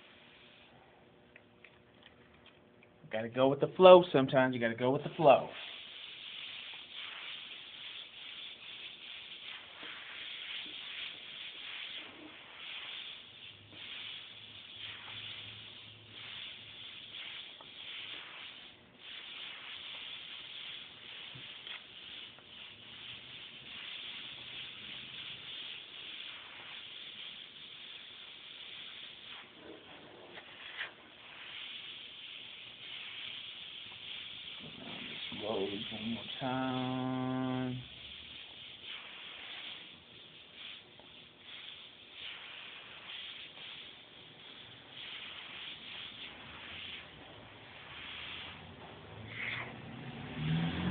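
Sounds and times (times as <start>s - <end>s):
airbrush hissing: 0.0s - 0.8s, 3.7s - 50.9s.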